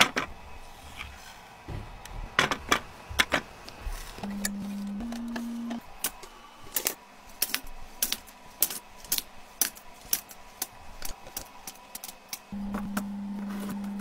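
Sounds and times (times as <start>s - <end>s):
steady low hum: 0.0s - 14.0s.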